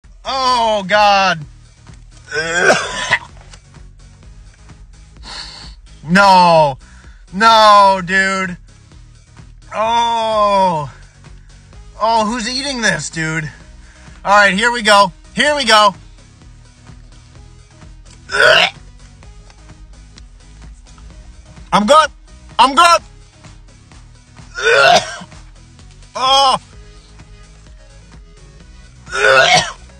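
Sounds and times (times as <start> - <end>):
quiet background music: 0.0 - 29.9
man gagging: 2.3 - 3.3, 18.3 - 18.8, 24.5 - 25.3, 26.2 - 26.6, 29.1 - 29.8
man retching: 2.3 - 3.3, 18.2 - 18.8, 24.5 - 25.3, 29.1 - 29.9
breathy exhale: 5.2 - 5.8, 6.8 - 7.2, 13.6 - 14.2.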